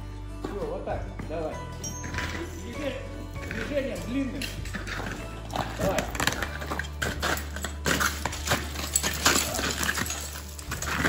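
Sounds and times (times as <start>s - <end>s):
carabiners clinking: 1.4s - 11.0s
crampons kicking into ice: 5.6s - 11.0s.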